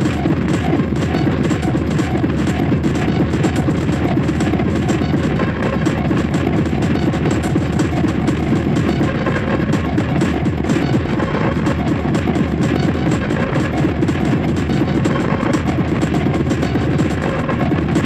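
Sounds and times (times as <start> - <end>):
industrial hardcore electronic music: 0.0 - 18.0.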